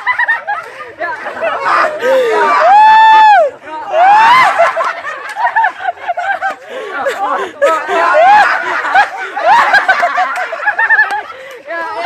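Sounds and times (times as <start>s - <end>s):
loud rising shout: 1.6s - 4.7s
rapid high-pitched laughter: 4.0s - 12.0s.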